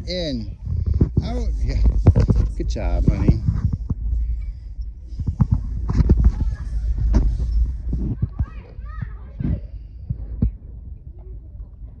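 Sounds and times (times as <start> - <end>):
wind rumble on microphone: 0.0 - 12.0
children's voices on playground: 6.0 - 12.0.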